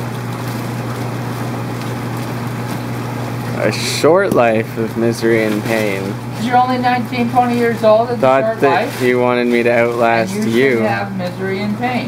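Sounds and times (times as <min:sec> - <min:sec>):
pumps humming and hissing: 0:00.0 - 0:12.0
plastic bags rustling: 0:07.4 - 0:11.1.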